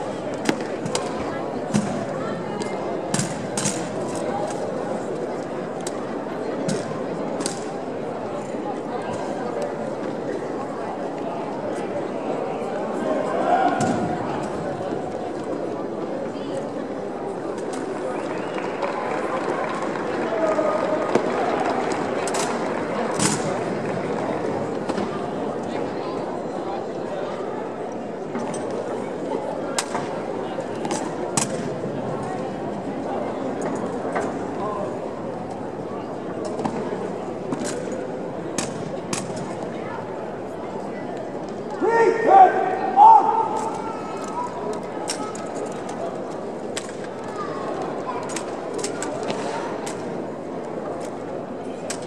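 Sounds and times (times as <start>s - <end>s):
background murmur: 0.0s - 52.0s
crowd chatter: 0.0s - 52.0s
rifles clicking and knocking: 48.2s - 49.2s.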